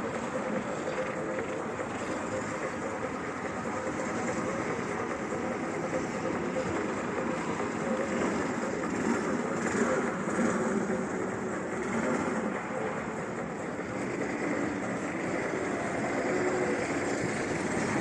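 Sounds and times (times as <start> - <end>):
go-kart engines: 0.0 - 18.0.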